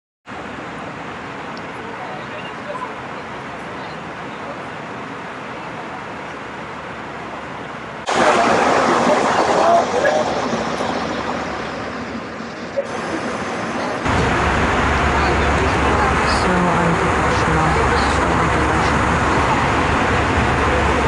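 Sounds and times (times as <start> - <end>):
aircraft cabin drone: 5.2 - 21.0.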